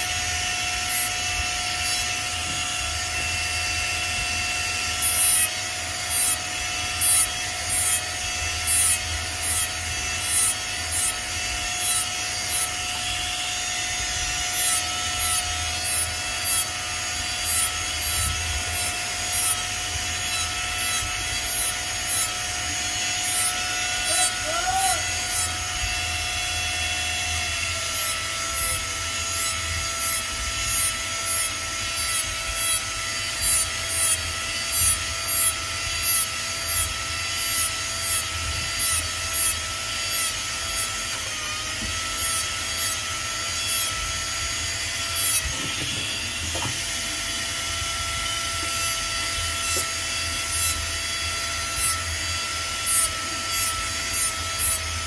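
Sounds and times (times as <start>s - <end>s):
rotary handpiece whining: 0.0s - 55.0s.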